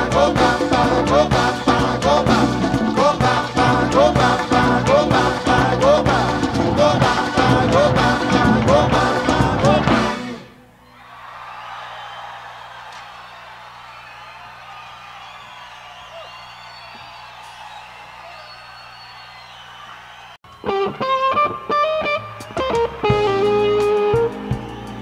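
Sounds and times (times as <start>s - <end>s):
audience noise with whistles: 10.8s - 21.0s, 23.9s - 25.0s
electric guitar picked notes: 20.5s - 25.0s.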